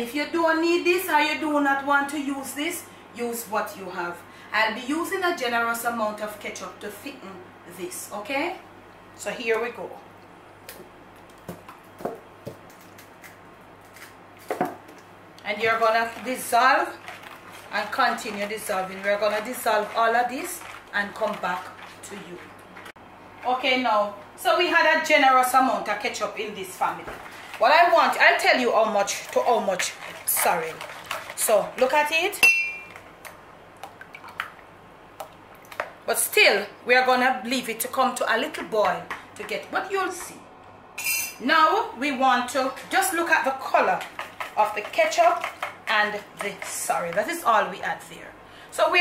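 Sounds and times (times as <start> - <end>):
whisk stirring thick sauce: 15.6 - 22.9, 26.8 - 32.3, 42.3 - 48.1.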